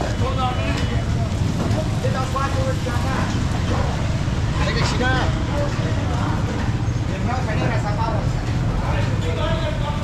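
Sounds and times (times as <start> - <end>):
low rumble of traffic: 0.0 - 10.0
people talking: 0.0 - 10.0.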